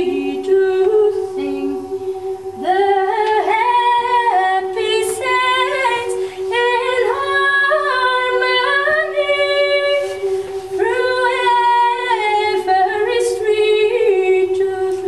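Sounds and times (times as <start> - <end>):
choir singing: 0.0 - 15.0
singer breath: 6.2 - 6.5, 10.2 - 10.8.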